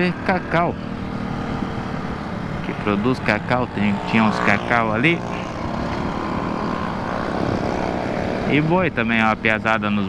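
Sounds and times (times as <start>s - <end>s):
motorcycle engine hum: 0.0s - 10.0s
wind and road noise: 0.0s - 10.0s.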